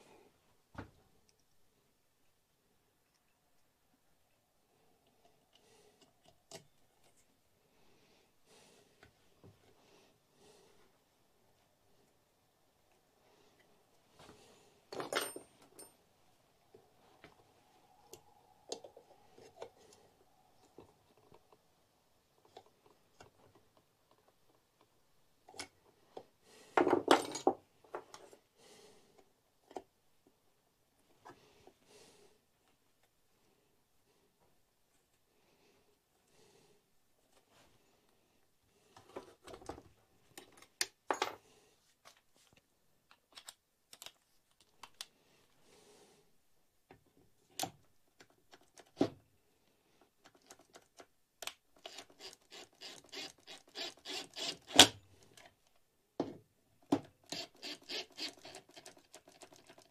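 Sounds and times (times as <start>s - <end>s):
cordless drill driving screws: 51.8s - 55.0s, 57.3s - 59.0s.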